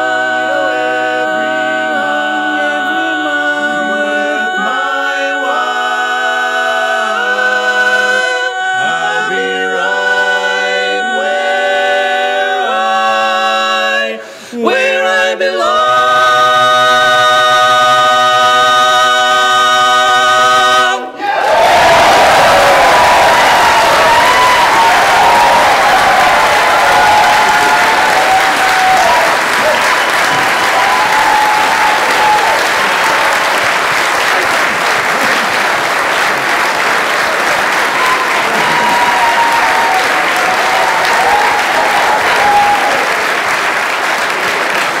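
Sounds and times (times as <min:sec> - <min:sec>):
vocal quartet singing a chord: 0:00.0 - 0:34.6
voices cheering and whooping: 0:21.2 - 0:33.7, 0:37.8 - 0:43.2
audience applause: 0:21.2 - 0:45.0.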